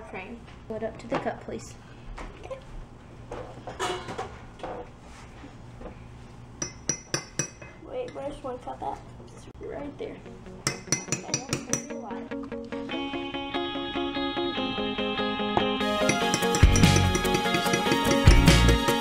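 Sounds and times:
background music: 10.3 - 19.0
spoon clinking against glass cup: 15.9 - 18.5.

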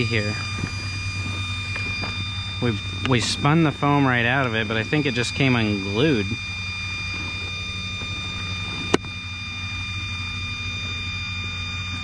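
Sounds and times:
high-pitched whine: 0.0 - 12.0
steady mechanical hum: 0.0 - 12.0.

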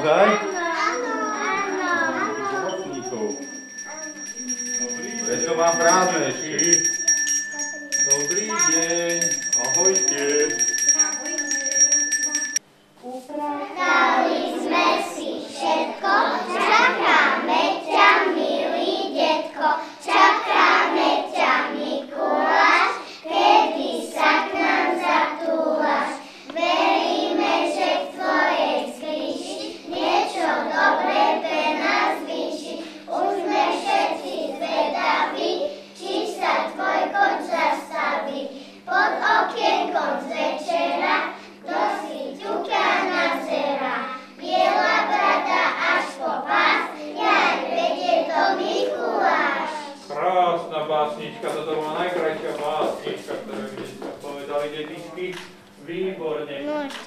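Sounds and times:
young children singing: 13.8 - 41.0, 41.6 - 50.1.

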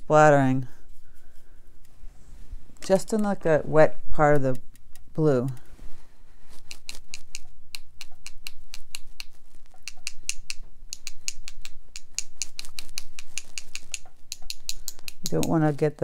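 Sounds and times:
brush tapping on brush handle: 6.6 - 15.7.

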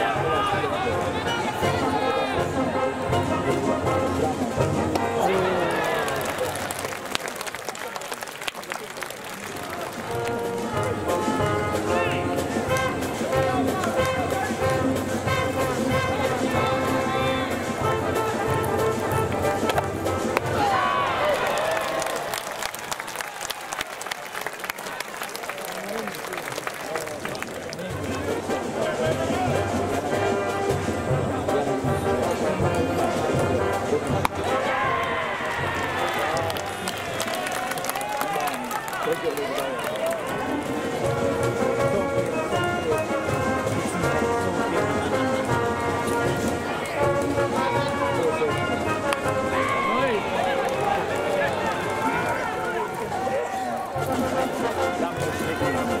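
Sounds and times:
crowd voices: 0.0 - 56.0.

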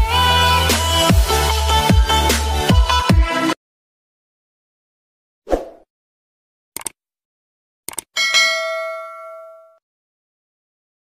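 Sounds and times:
bell ding: 8.2 - 9.8.

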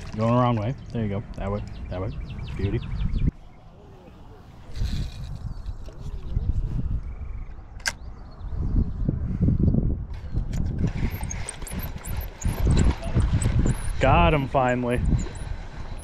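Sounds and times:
wind buffeting microphone: 0.0 - 16.0
spinning reel being cranked: 10.6 - 14.0.

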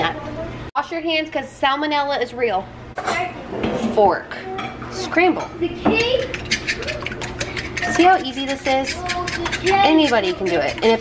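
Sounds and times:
fork beating eggs in a pan: 5.9 - 11.0.

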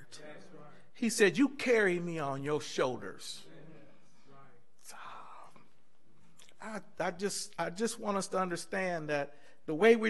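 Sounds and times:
low room tone: 0.0 - 10.0.

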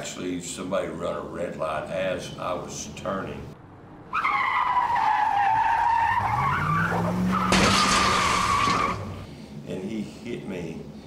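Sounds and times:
tyre screech: 4.1 - 9.3
loud car crash: 6.0 - 9.3.

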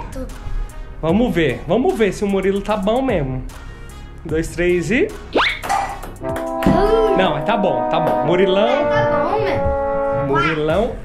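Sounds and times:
held music chords: 6.1 - 11.0.

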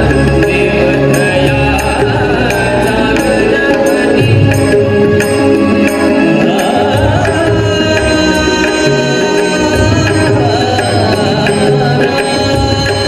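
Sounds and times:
harmonium chords: 0.0 - 13.0
tabla beat: 0.0 - 13.0.

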